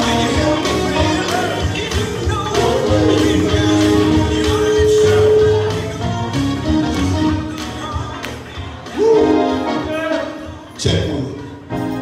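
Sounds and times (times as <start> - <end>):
drums keeping a steady beat: 0.0 - 9.5.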